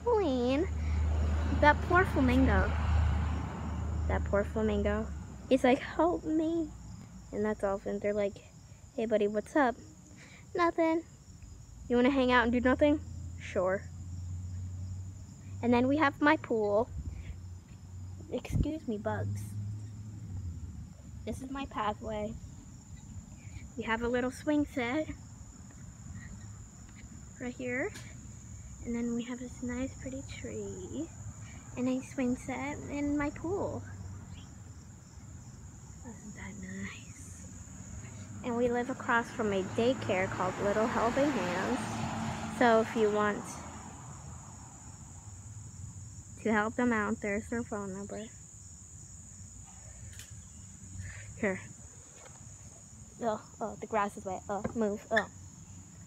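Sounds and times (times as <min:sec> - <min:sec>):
high-pitched insect trill: 0:00.0 - 0:56.0.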